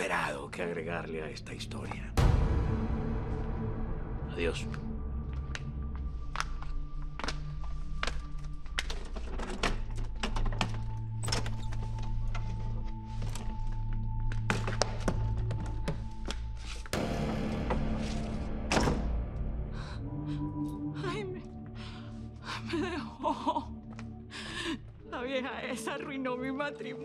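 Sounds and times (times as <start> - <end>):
suspense score with held notes: 0.0 - 27.0.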